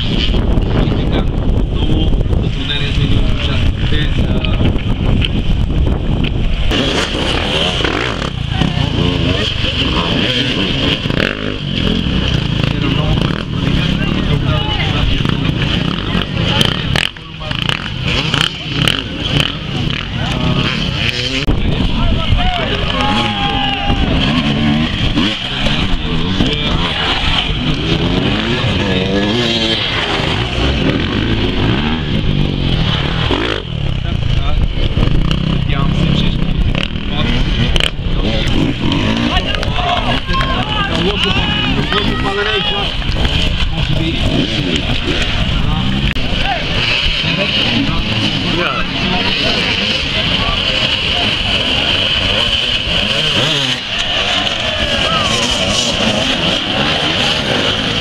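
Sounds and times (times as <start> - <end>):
people talking: 0.0 - 5.3, 6.8 - 58.0
motorcycle engines revving: 0.0 - 58.0.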